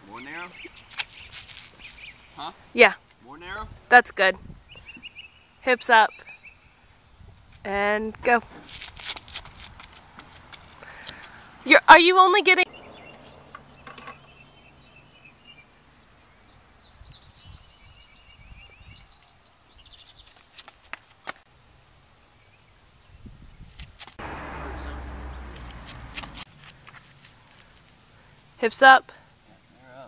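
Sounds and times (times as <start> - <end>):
small birds chirping: 0.0 - 3.6, 4.5 - 8.2, 10.2 - 21.4.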